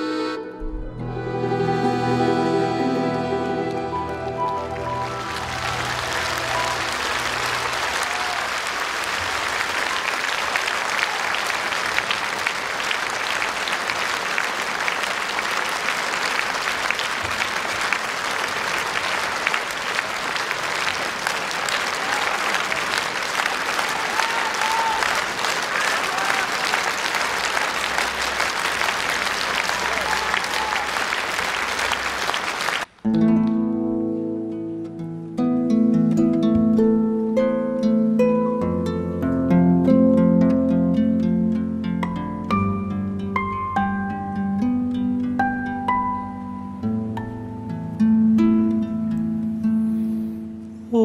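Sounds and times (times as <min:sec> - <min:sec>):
music: 0:00.0 - 0:08.3, 0:33.0 - 0:51.0
audience applauding: 0:02.1 - 0:33.0.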